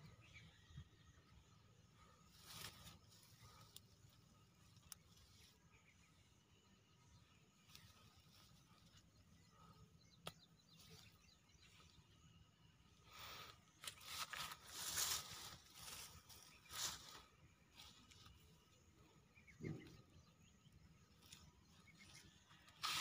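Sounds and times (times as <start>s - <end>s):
grass and weeds rustling: 2.0s - 23.0s.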